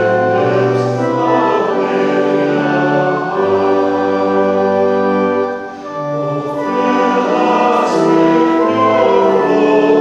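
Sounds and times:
congregation singing a hymn: 0.0 - 10.0
organ chords: 0.0 - 10.0.

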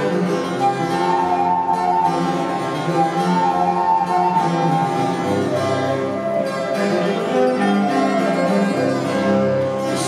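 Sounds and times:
flute melody: 0.0 - 10.0
viola da gamba: 0.0 - 10.0.

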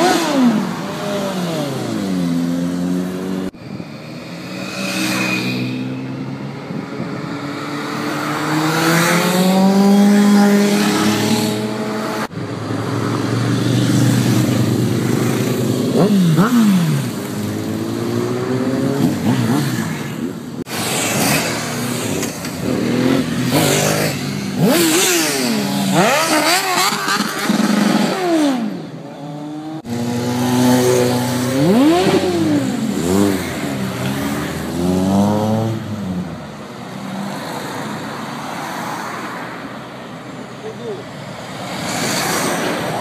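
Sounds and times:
motorcycles revving past: 0.0 - 39.6
steady traffic noise: 0.0 - 43.0.

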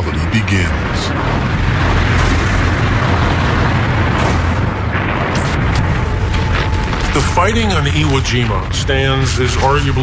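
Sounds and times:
engines rumbling: 0.0 - 10.0.

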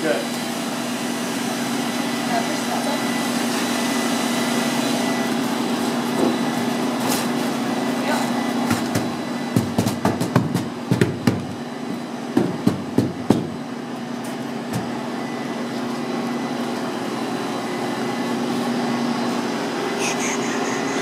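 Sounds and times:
steady machine hum: 0.0 - 21.0
knocks and taps on foam board: 8.7 - 11.6, 12.4 - 13.6.

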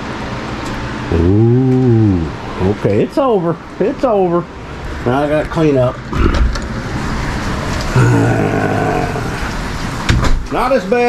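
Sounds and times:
man groaning: 1.1 - 2.4, 7.9 - 9.5
man sighing: 1.1 - 2.4, 7.9 - 9.4.

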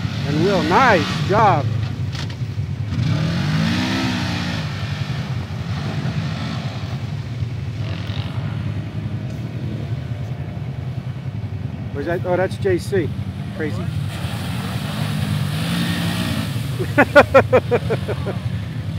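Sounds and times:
utility vehicle engine revving: 0.0 - 18.9.

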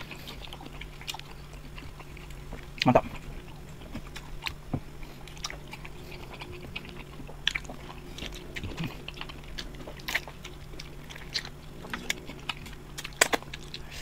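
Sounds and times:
chewing and biting food: 0.0 - 14.0
faint low hum: 0.0 - 14.0.

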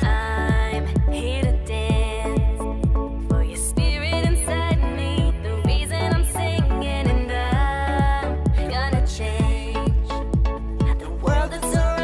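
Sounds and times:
bass and synth tones: 0.0 - 12.0
deep kick drum: 0.0 - 12.0.

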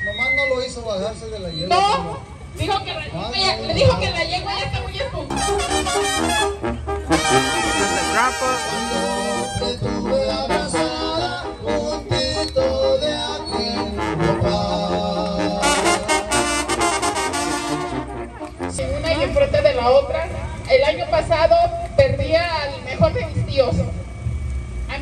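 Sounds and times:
brass band playing: 5.3 - 19.4.

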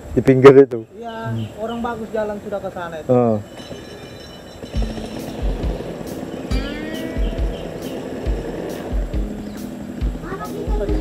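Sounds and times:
background music with bass pulses: 4.8 - 11.0.

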